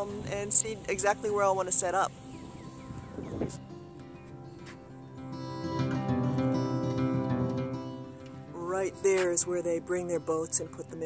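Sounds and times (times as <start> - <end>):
music of sustained chords: 0.0 - 11.0.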